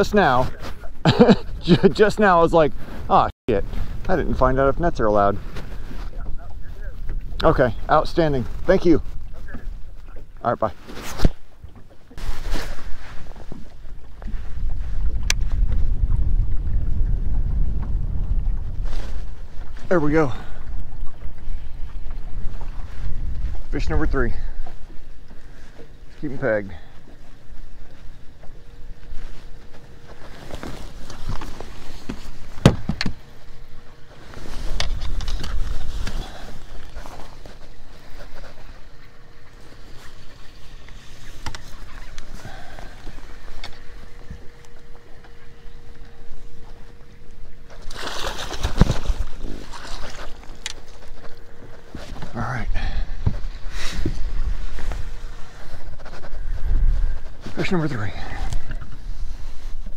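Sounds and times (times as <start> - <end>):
faint steady hum: 0.0 - 59.9
knocks and clicks on boat deck: 31.2 - 33.3.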